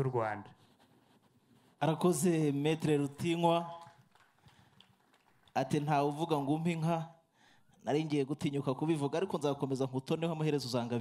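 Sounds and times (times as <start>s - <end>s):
man's amplified voice: 0.0s - 0.6s, 1.8s - 4.0s, 5.6s - 7.2s, 7.8s - 11.0s.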